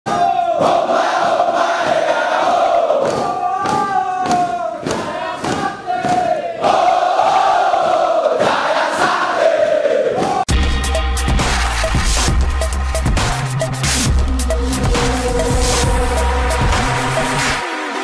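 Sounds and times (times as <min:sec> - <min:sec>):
soldiers shouting a chant: 0:00.1 - 0:10.5
rhythmic thumps: 0:10.2 - 0:18.0.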